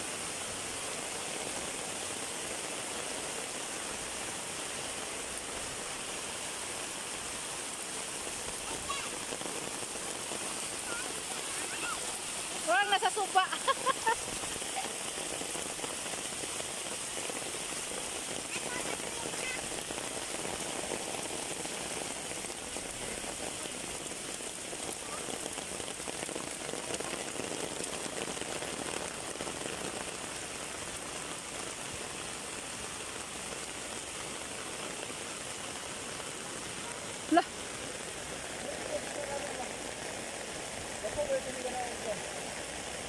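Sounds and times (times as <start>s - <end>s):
rain on leaves and wet road: 0.0s - 43.0s.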